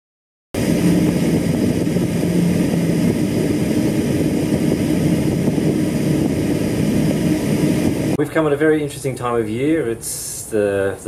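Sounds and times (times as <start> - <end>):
constant rushing noise: 0.6 - 8.2
ship engines droning: 0.6 - 10.4.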